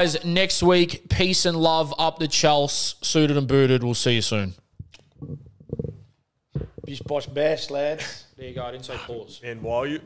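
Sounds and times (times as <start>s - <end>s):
man speaking: 6.9s - 10.0s.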